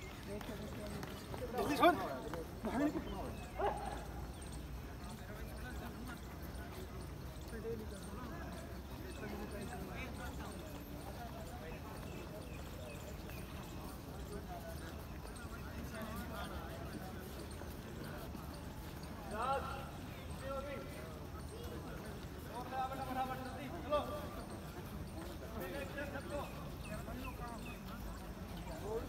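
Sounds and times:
distant crowd chatter: 0.0s - 29.0s.

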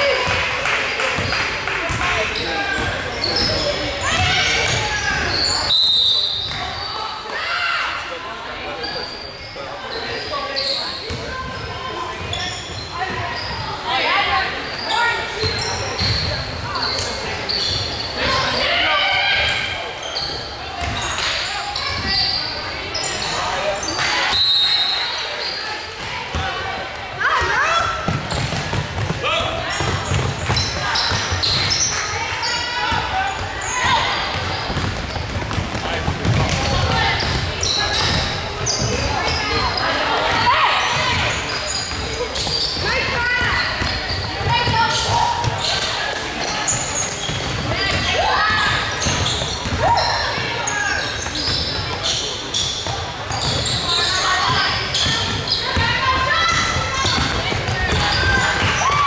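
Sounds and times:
indistinct calls in a gym: 0.0s - 59.0s
basketball bouncing on hardwood: 34.4s - 38.3s.

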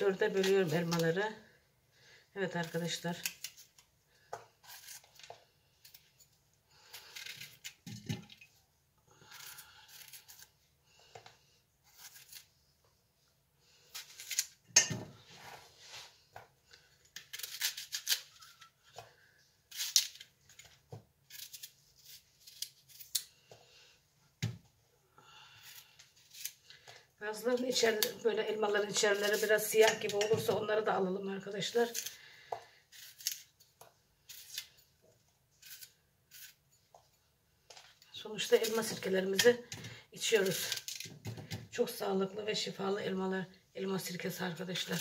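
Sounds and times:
knife cutting apples: 11.8s - 12.6s, 25.4s - 30.7s.

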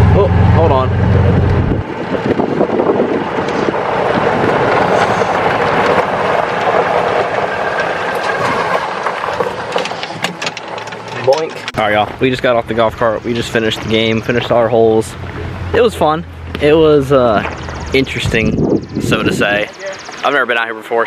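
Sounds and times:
golf cart movement noise: 0.0s - 21.0s
wind rushing: 0.3s - 9.8s, 17.7s - 20.2s.

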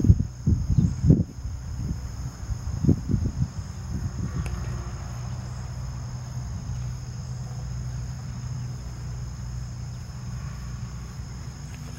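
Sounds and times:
crickets trilling: 0.0s - 11.9s
low steady hum: 0.0s - 11.9s.

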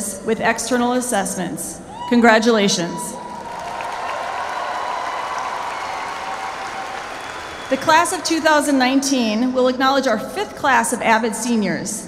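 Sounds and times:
large audience applauding: 3.3s - 8.9s.

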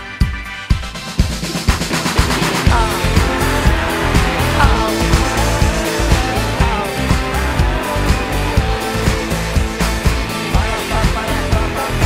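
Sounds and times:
busy drumming: 0.9s - 12.0s
live pop-rock band: 1.3s - 12.0s.

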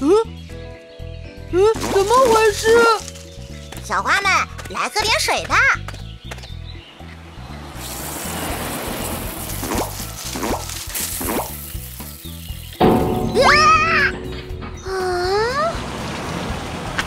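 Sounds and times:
background music: 0.0s - 17.0s
cartoon water sprinkling hiss: 7.8s - 12.7s
loud cartoon sound effect: 13.4s - 14.2s.

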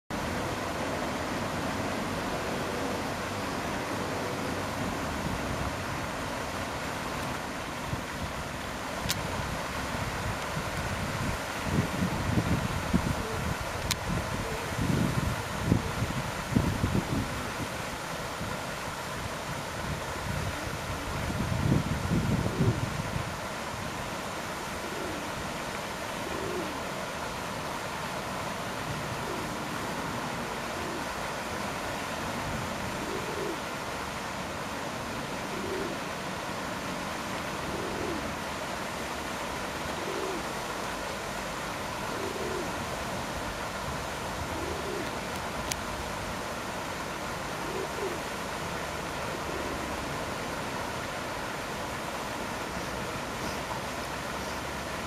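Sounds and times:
outdoor hiss: 0.1s - 55.0s
wind buffeting microphone: 9.0s - 17.7s, 19.2s - 23.4s
bird cooing: 13.1s - 13.5s, 14.4s - 14.8s, 24.6s - 25.4s, 26.1s - 26.9s, 29.0s - 31.3s, 32.9s - 33.7s, 35.4s - 36.2s, 37.6s - 38.4s, 39.9s - 40.6s, 42.0s - 42.9s, 44.4s - 45.3s, 47.4s - 48.5s, 49.2s - 50.1s.

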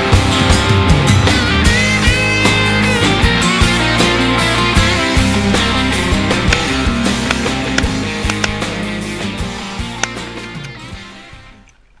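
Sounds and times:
song with guitar and drums: 0.0s - 11.8s.

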